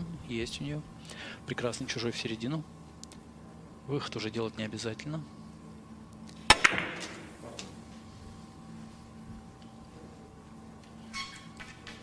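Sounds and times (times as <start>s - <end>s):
cue striking ball: 6.5s - 7.6s.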